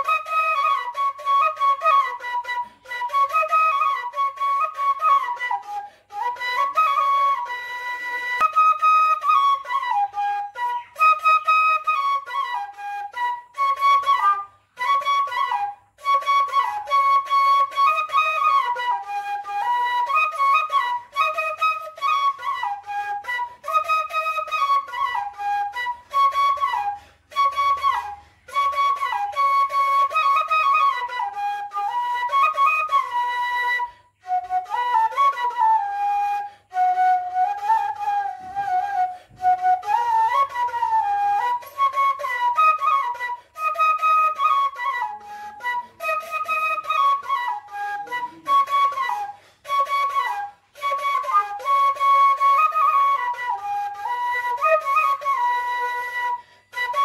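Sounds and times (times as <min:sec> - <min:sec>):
flute melody: 0:00.0 - 0:57.0.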